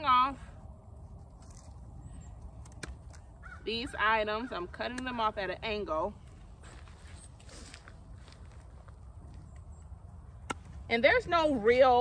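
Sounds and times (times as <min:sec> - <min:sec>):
twigs rustling: 0:00.8 - 0:04.0, 0:06.2 - 0:11.8
pruners snipping twig: 0:02.4 - 0:03.3.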